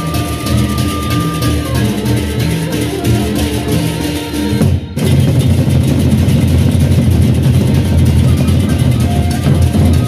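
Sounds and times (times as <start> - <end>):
barrel drums beaten fast: 0.0 - 10.0.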